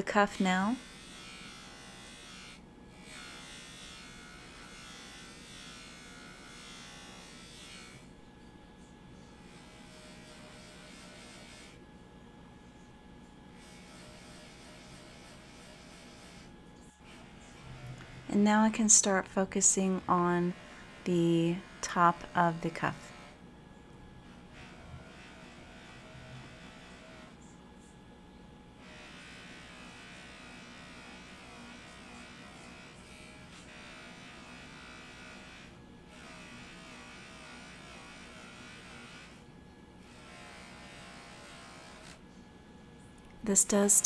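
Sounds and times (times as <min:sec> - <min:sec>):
bench polisher whirring: 0:00.0 - 0:11.9, 0:13.5 - 0:23.4, 0:24.2 - 0:27.5, 0:28.8 - 0:42.4.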